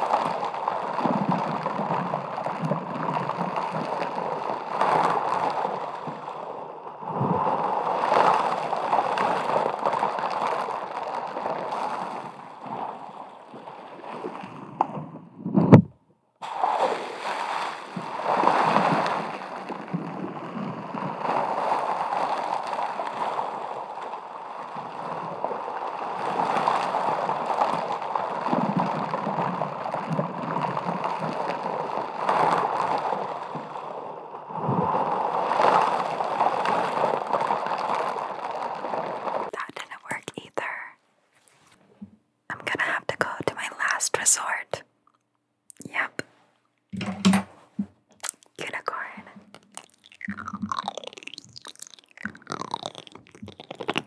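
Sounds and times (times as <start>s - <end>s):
scratchy hiss: 0.0s - 15.8s, 16.4s - 44.8s, 45.8s - 54.0s
sharp crackles and clicks: 0.0s - 41.8s, 42.7s - 54.0s.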